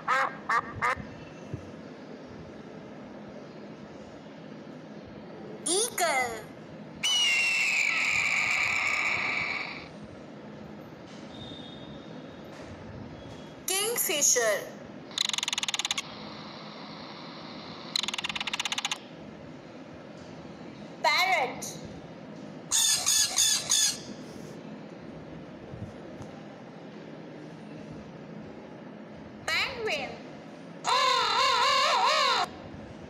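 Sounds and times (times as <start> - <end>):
eagle screaming: 7.0 - 9.9, 30.8 - 32.6
parrot squawking: 7.0 - 9.9, 15.1 - 16.1, 18.0 - 19.0, 22.7 - 24.2, 30.9 - 32.5.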